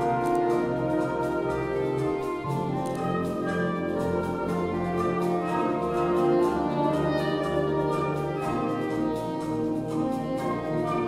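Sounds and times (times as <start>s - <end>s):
soprano saxophone: 0.0s - 11.0s
wind band held chords: 0.0s - 11.0s.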